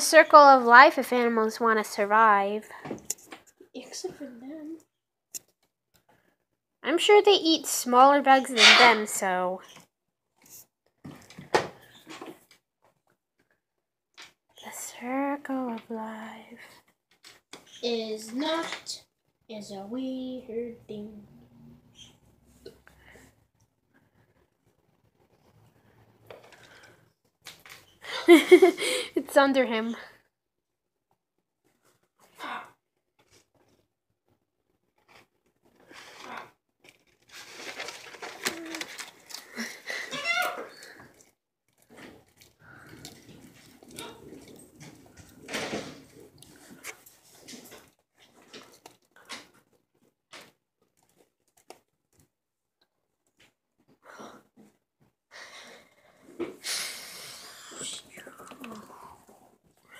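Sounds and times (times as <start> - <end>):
jaws clicking while chewing: 40.8 - 45.5.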